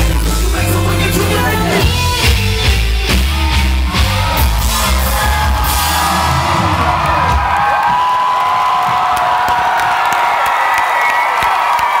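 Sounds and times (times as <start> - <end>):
live band music: 0.0 - 7.7
crowd cheering and whooping: 2.2 - 12.0.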